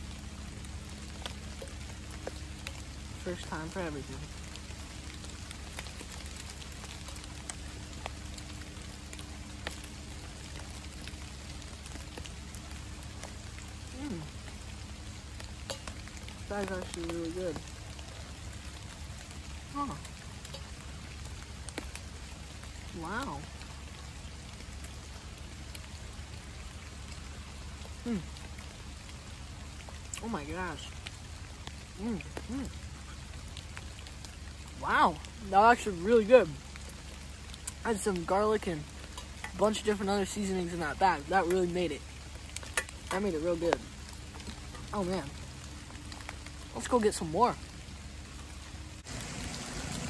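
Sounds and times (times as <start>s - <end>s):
rain falling: 0.0s - 50.0s
person humming: 14.0s - 14.3s, 28.1s - 28.3s, 32.0s - 32.8s.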